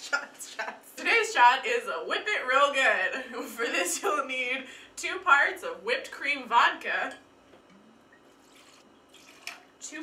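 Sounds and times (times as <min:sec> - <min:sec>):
liquid trickling from bottle: 0:08.4 - 0:09.7.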